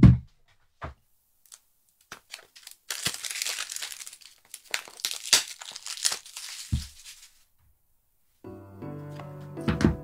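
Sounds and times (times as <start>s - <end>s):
crinkling and rustling: 1.4s - 7.5s
sharp crackles: 2.3s - 7.1s.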